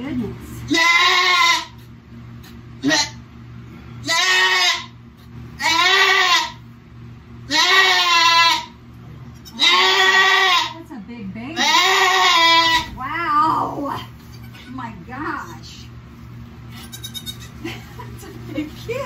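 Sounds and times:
goat bleating: 0.7s - 1.8s, 2.8s - 3.2s, 4.0s - 5.0s, 5.6s - 6.6s, 7.4s - 8.8s, 9.4s - 10.8s, 11.6s - 13.0s, 14.2s - 14.8s, 16.7s - 17.6s.

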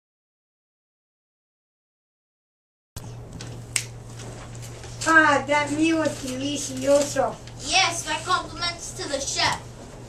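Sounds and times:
steady low hum: 3.0s - 10.0s.

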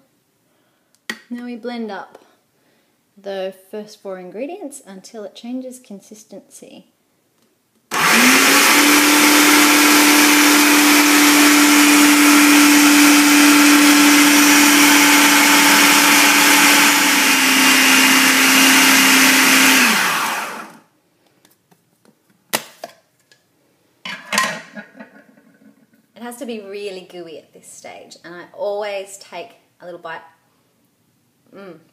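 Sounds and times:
food processor motor whining: 7.9s - 20.8s.

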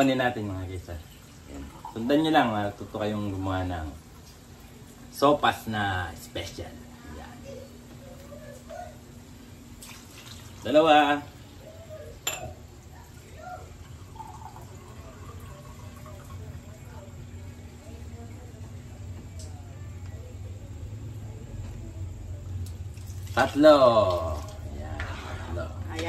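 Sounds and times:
low steady hum: 0.0s - 26.0s
faint murmured voices: 6.7s - 23.3s
water pouring into pan: 9.8s - 11.3s, 12.8s - 17.1s, 22.6s - 25.7s.

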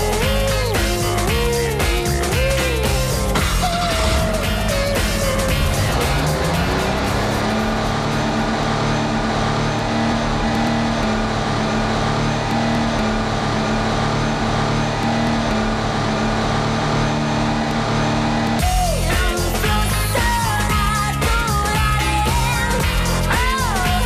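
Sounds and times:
car engine drone at high revs: 0.0s - 24.0s
music: 0.0s - 24.0s.

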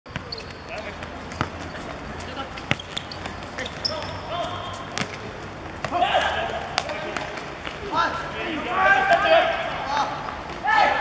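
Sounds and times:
faint players' voices: 0.1s - 11.0s.

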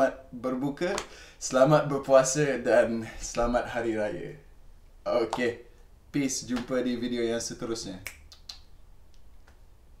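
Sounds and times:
finger snap: 0.9s - 1.2s, 8.0s - 9.6s.

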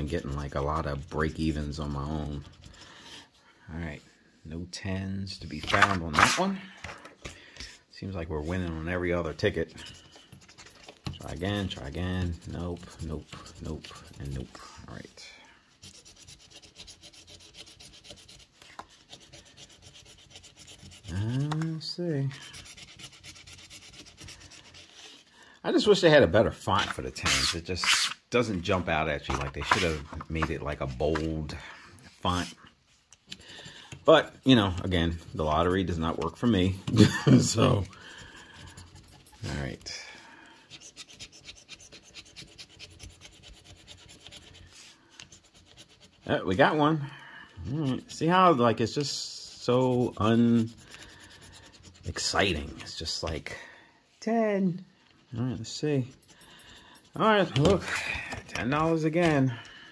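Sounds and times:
coin scratching lottery ticket: 22.3s - 24.9s, 49.6s - 52.9s.

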